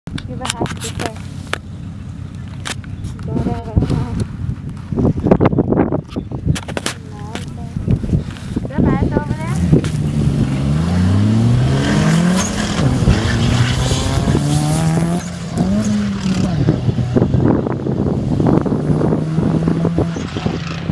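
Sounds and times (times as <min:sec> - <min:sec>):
race car engines revving: 0:06.6 - 0:20.9.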